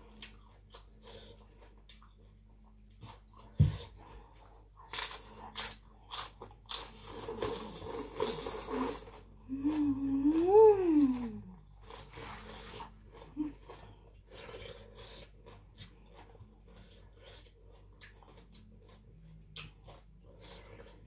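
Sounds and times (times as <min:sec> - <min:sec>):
crunchy chewing: 0:00.0 - 0:09.3, 0:11.5 - 0:21.0
slurping noodles: 0:06.8 - 0:09.3, 0:11.8 - 0:13.6
person humming mmm: 0:08.2 - 0:11.6.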